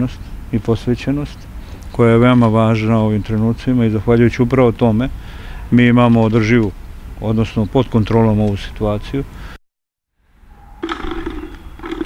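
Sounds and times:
outdoor background noise: 0.0 - 9.6, 10.2 - 12.0.

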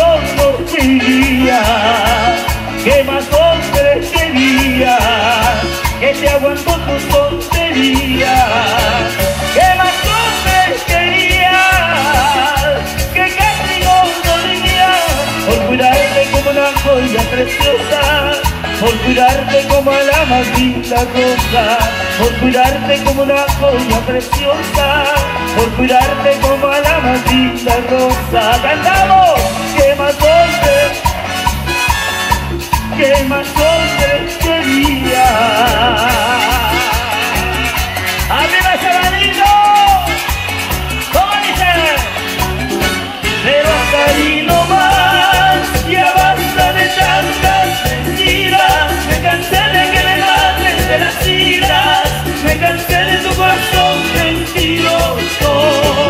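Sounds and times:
bass and drum beat: 0.0 - 56.0
wavering lead melody: 24.3 - 56.0
lead melody sliding down: 55.4 - 56.0.

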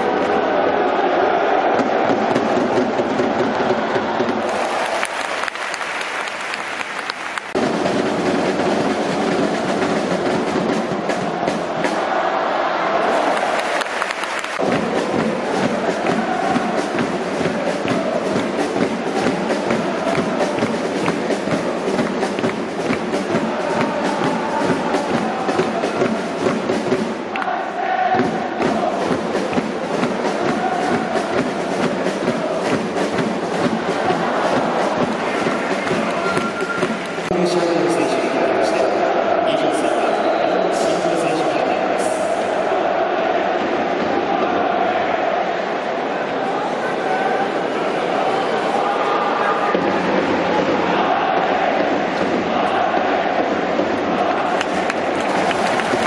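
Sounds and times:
crowd chanting: 0.0 - 56.0
steady drumming: 0.9 - 38.8, 40.8 - 45.3, 49.7 - 56.0.

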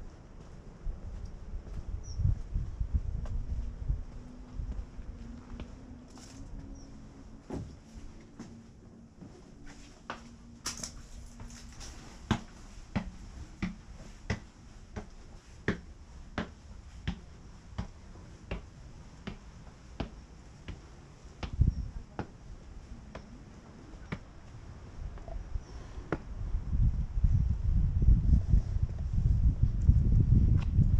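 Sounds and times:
footsteps on stone steps: 0.3 - 25.4.

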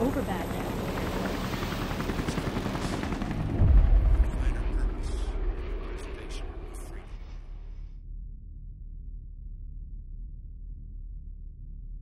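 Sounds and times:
deep boom: 3.5 - 5.6.

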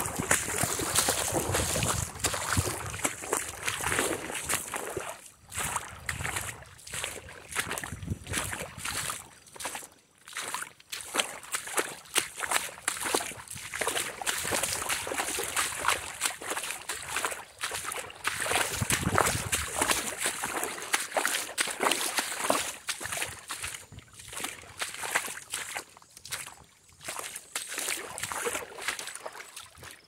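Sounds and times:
waves lapping on pebble shore: 0.0 - 4.7.

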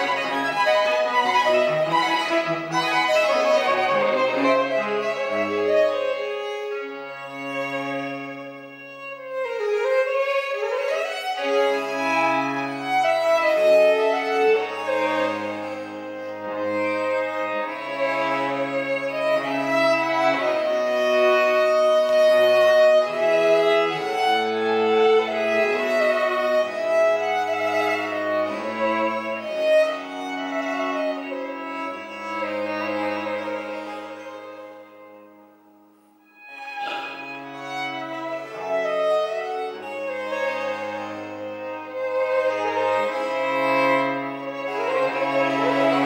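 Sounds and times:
cello bass notes: 0.0 - 35.5, 36.3 - 46.0
violins playing melodic lines: 0.0 - 46.0.

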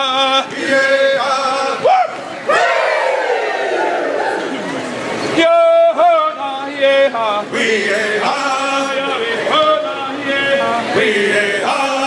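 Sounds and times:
group singing a chant: 0.0 - 1.9, 6.9 - 12.0.

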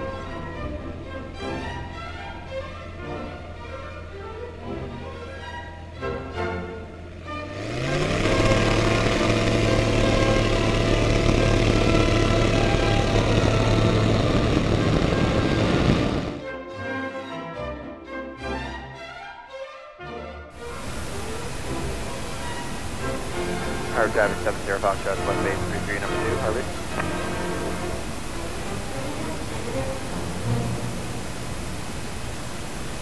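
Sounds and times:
light aircraft engine and propeller: 0.0 - 16.5, 20.6 - 33.0
music: 0.0 - 32.3.

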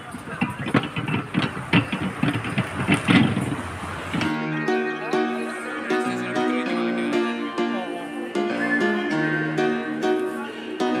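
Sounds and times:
roadside street noise with clatter: 0.0 - 11.0
plucked guitar-like music: 4.2 - 11.0.

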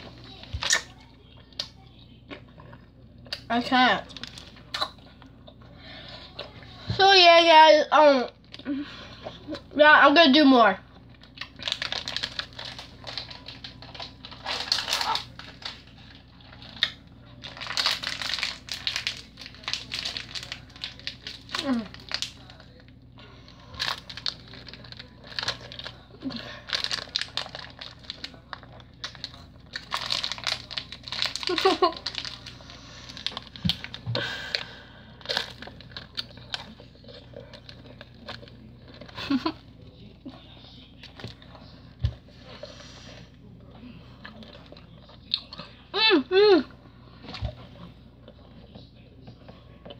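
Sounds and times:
plastic wrapper crinkling: 4.1 - 4.6, 11.1 - 23.0, 23.7 - 39.6.

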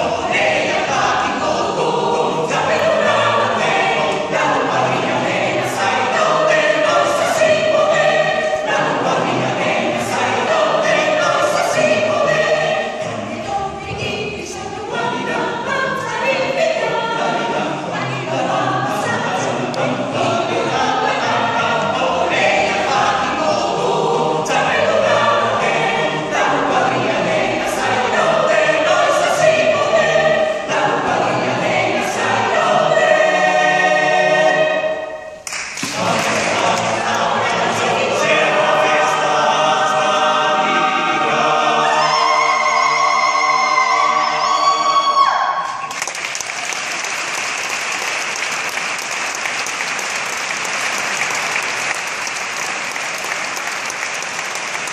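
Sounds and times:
mixed choir singing in harmony: 0.0 - 54.9.

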